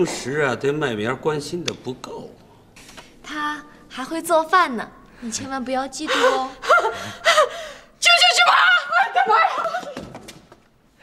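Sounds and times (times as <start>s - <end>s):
woman gasping: 6.0s - 8.0s
woman shouting in alarm: 8.0s - 9.8s.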